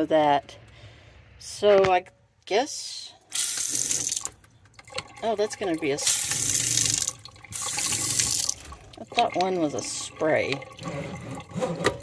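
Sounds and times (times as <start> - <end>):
faucet water running into sink: 3.3 - 11.6.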